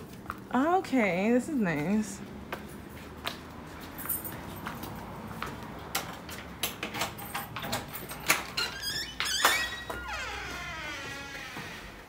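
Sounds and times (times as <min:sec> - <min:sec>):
door squeaking open: 0:07.4 - 0:12.0.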